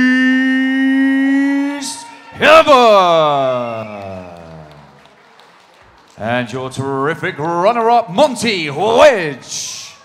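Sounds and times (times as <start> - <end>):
announcer calling into a microphone: 0.0 - 3.8.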